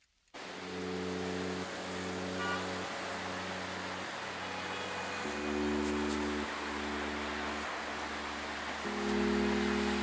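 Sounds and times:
city traffic noise: 0:00.4 - 0:10.0.

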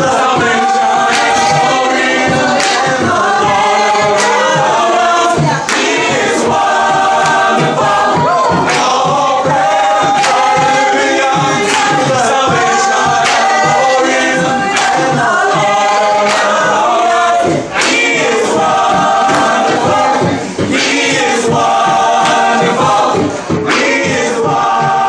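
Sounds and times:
steady percussive beat: 0:00.0 - 0:25.0
vocal group singing in harmony: 0:00.0 - 0:25.0.

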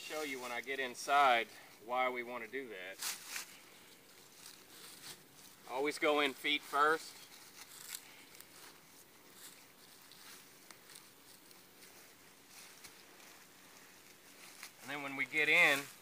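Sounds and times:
dry leaves rustling and crackling: 0:02.9 - 0:16.0.

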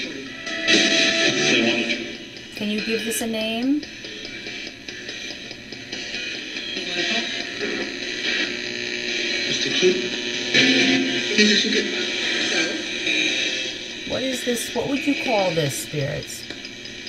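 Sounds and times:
scraps of broadcast voices: 0:00.0 - 0:16.6
radio static: 0:00.0 - 0:17.0
scraps of broadcast music: 0:00.0 - 0:17.0.

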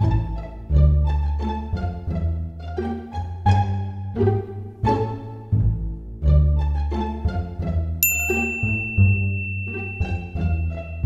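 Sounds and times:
plucked and bowed strings music: 0:00.0 - 0:08.6
bell-like ding: 0:08.0 - 0:11.0.

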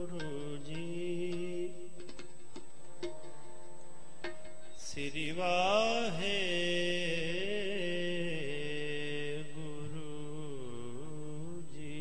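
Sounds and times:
man singing a wavering note: 0:00.0 - 0:02.1, 0:04.7 - 0:12.0
held accompaniment notes: 0:00.0 - 0:06.4.

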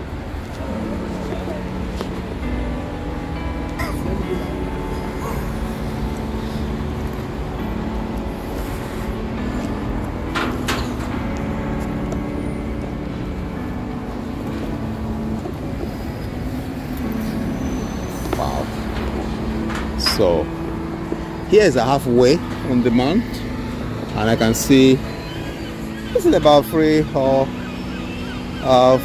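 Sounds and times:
road traffic rumble: 0:00.0 - 0:29.0
indistinct voices: 0:03.8 - 0:06.9.

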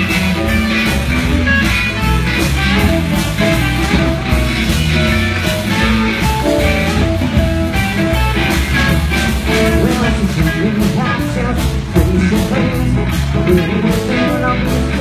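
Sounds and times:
live blues band playing: 0:00.0 - 0:15.0.

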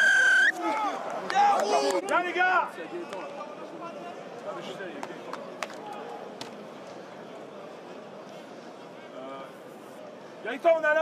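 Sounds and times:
stadium noise: 0:00.0 - 0:11.0.

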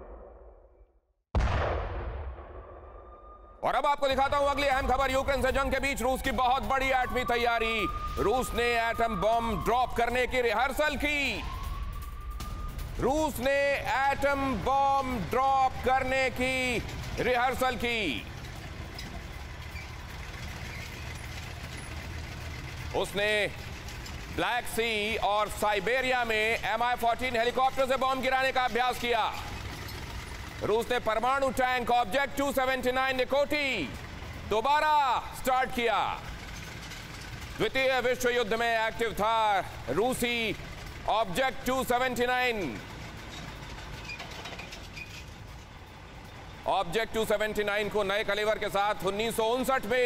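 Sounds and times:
tank engine rumbling: 0:03.6 - 0:50.0.

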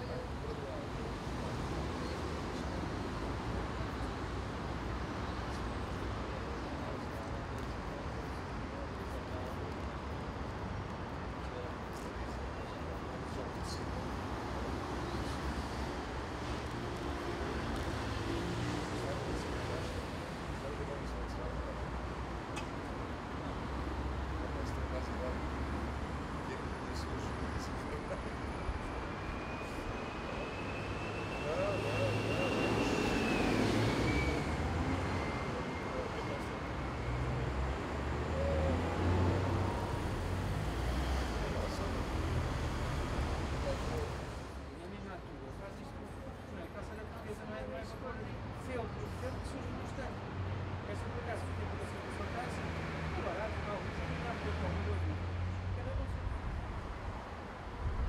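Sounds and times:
cars and buses passing: 0:00.0 - 0:58.0.

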